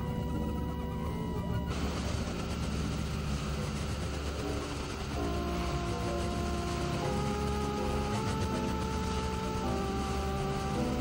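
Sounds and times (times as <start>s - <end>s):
noisy electronic drone rumble: 0.0s - 11.0s.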